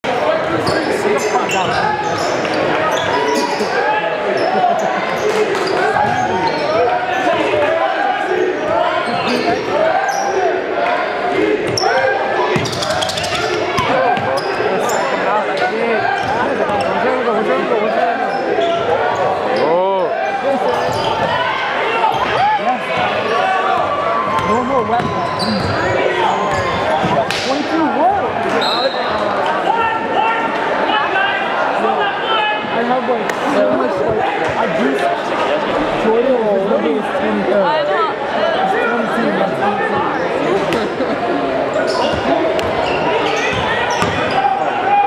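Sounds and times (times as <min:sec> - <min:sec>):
players calling out: 0:00.0 - 0:45.0
sneaker squeaks: 0:00.5 - 0:07.4, 0:08.6 - 0:10.4, 0:11.6 - 0:17.1, 0:18.2 - 0:19.8, 0:20.6 - 0:21.4, 0:24.3 - 0:27.2, 0:28.5 - 0:29.3, 0:41.7 - 0:44.6
basketball bouncing on court: 0:12.6 - 0:14.4, 0:23.8 - 0:25.9, 0:43.5 - 0:44.3.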